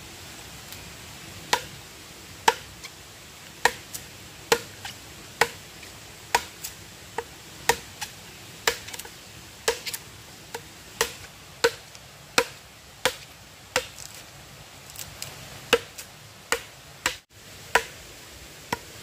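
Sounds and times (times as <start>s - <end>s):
machete chopping into log: 2.5s - 2.7s, 3.6s - 3.8s, 4.5s - 5.6s, 6.3s - 6.7s, 7.7s - 11.8s, 12.4s - 14.2s, 15.7s - 17.2s.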